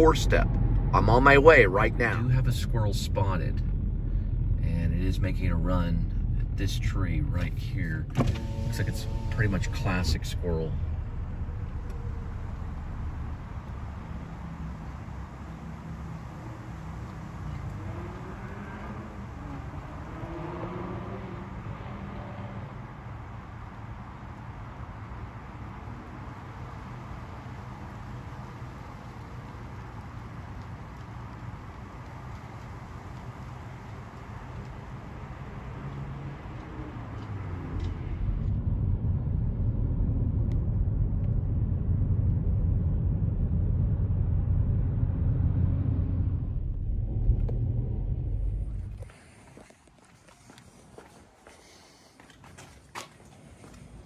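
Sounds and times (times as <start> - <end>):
road rumble inside moving car: 0.0 - 50.0
street traffic rumble: 0.0 - 54.0.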